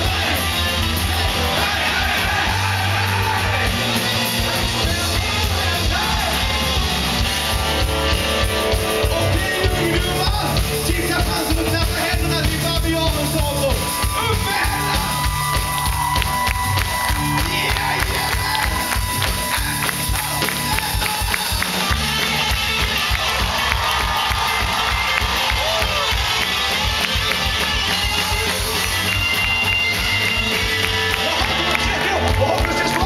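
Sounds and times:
drum kit beat: 0.0 - 33.0
electric guitars: 0.0 - 33.0.

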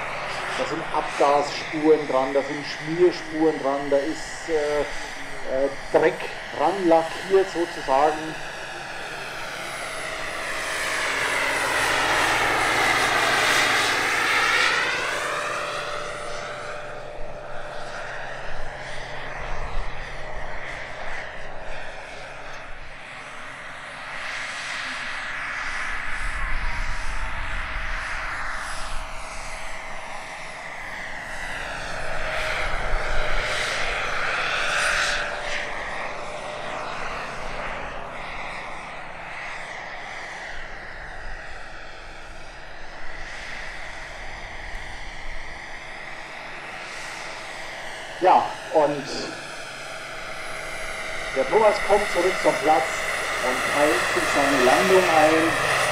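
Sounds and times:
model helicopter turbine whine: 0.0 - 55.9.

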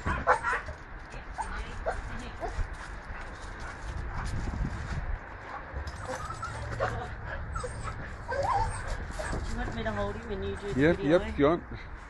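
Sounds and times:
dog whimpering: 6.0 - 10.1.

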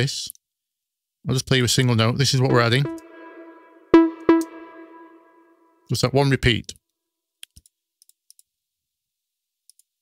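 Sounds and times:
held synthesizer tone: 2.5 - 5.5
synthesizer note with delay: 2.5 - 5.6.

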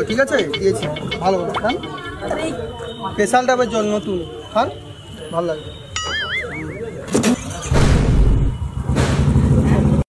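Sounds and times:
loud rough engine-like noise: 7.2 - 10.0.

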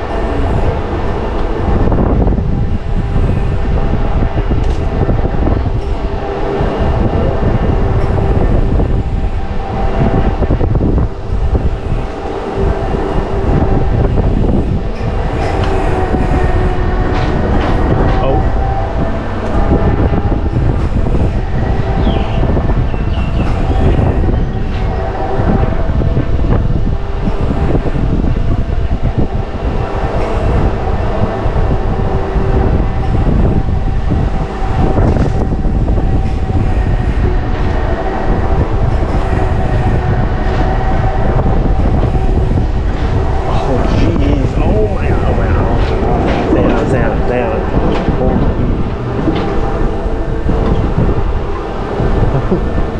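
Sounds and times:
faint steady whine: 0.0 - 52.9
gondola ride car rumbling: 0.0 - 52.9
wheels rattling on rail: 0.0 - 52.9.

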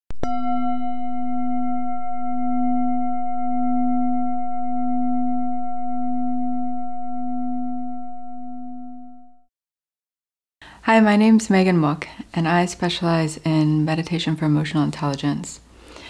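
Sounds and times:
low struck bell ringing: 0.2 - 9.4.

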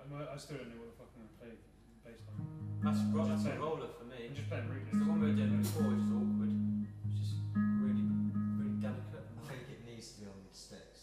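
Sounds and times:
guitar low sustained notes: 2.2 - 9.7.

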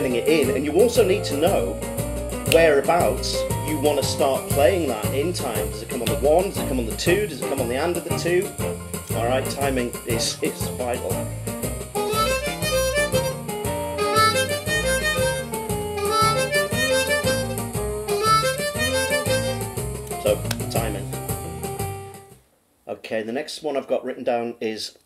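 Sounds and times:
blues backing track: 0.0 - 22.4
blues harmonica playing: 11.8 - 22.2.

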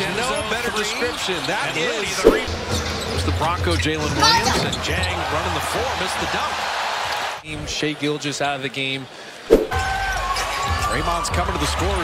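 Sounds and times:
sharp thump: 2.2 - 2.5, 9.5 - 9.8.

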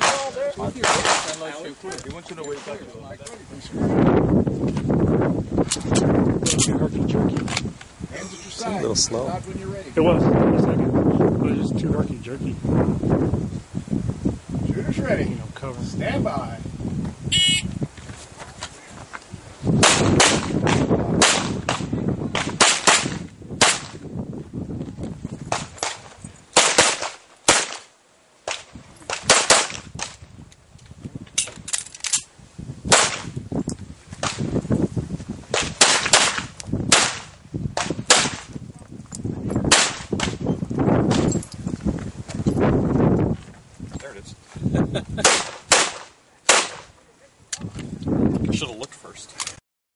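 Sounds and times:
handgun shots: 35.6 - 38.5, 39.7 - 40.4, 45.2 - 46.9.

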